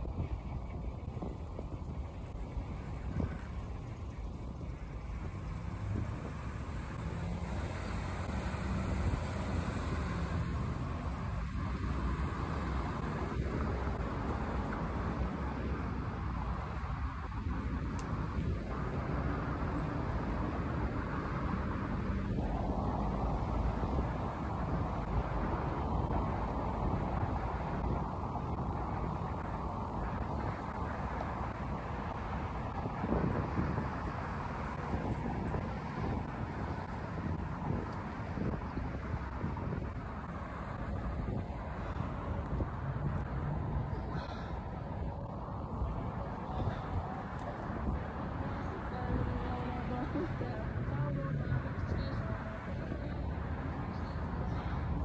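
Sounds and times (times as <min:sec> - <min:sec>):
road traffic rumble: 0:00.0 - 0:55.0
wind noise on microphone: 0:00.0 - 0:55.0.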